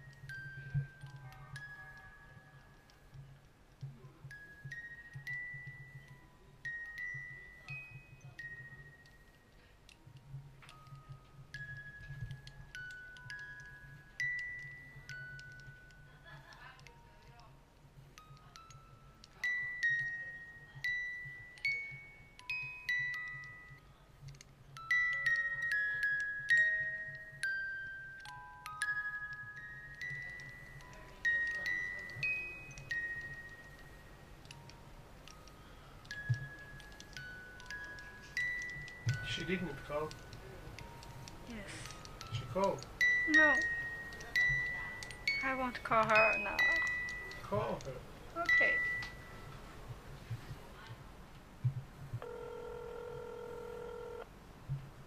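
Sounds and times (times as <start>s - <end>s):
music box tune: 0.0s - 50.2s, 52.2s - 54.3s
phone ringback tone: 52.2s - 54.3s.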